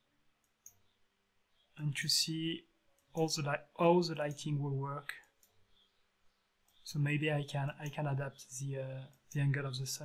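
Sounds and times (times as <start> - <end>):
computer mouse clicks: 0.4 - 1.0, 5.2 - 5.6
man speaking: 1.8 - 5.2, 6.9 - 10.0.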